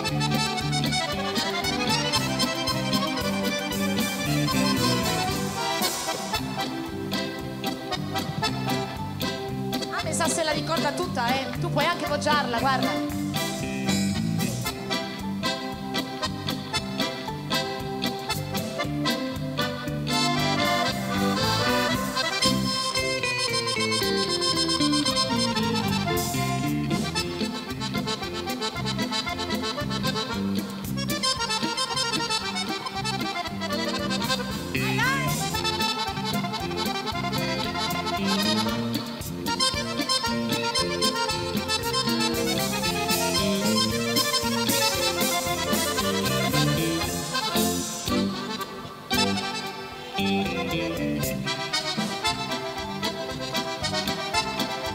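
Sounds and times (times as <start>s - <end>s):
fast accordion solo: 0.0s - 54.9s.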